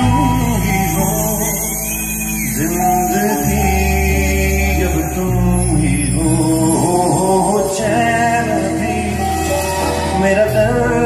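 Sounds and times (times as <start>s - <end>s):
person singing: 0.0s - 11.0s
steady bass: 0.0s - 11.0s.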